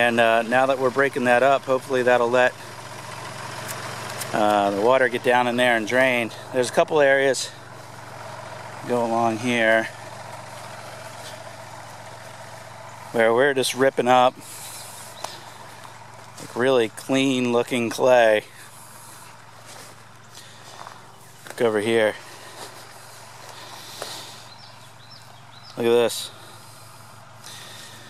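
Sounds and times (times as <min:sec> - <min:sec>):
tractor engine idling: 0:00.0 - 0:28.0
footsteps through tall grass: 0:10.0 - 0:13.2, 0:14.4 - 0:17.1, 0:18.7 - 0:25.6.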